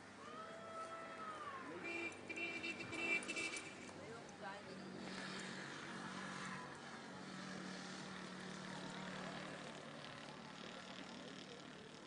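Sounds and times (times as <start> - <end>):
faint engine hum: 0.0 - 12.0.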